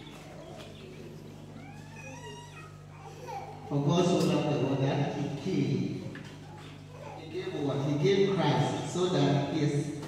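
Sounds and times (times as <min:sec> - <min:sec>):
steady low hum: 0:00.0 - 0:10.0
faint high-pitched cry: 0:01.4 - 0:03.7.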